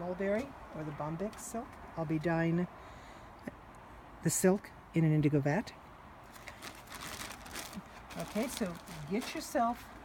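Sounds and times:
plastic bags and fabric rustling: 6.3 - 10.0.

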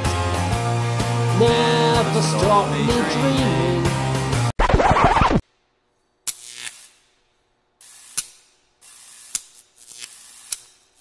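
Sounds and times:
sharp electric snaps: 6.2 - 11.0
crackling hiss of neon sign: 7.8 - 11.0.

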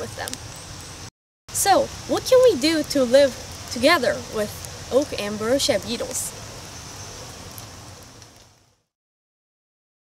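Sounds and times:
woodland ambience hiss: 0.0 - 8.8.

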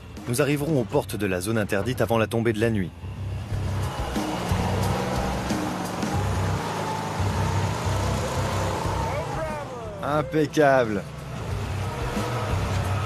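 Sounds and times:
faint background music: 0.0 - 13.0
truck engine rumbling: 0.0 - 13.0.

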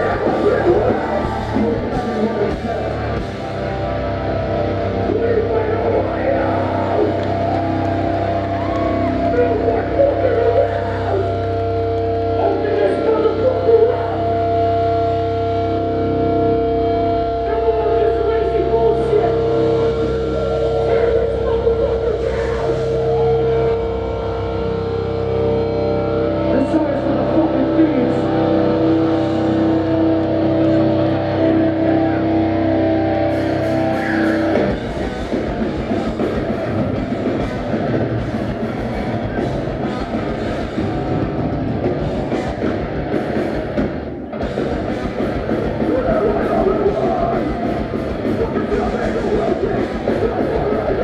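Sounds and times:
live hardcore band playing: 0.0 - 51.0
ringing guitar chords: 0.0 - 51.0.

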